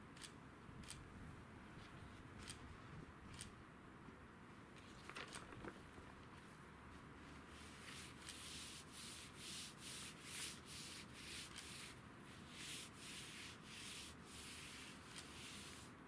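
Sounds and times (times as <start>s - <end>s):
hands rubbing paper: 7.2s - 16.0s.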